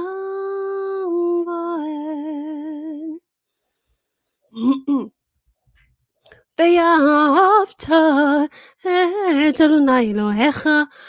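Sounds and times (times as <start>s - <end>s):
woman singing a cappella: 0.0s - 3.3s, 6.4s - 11.0s.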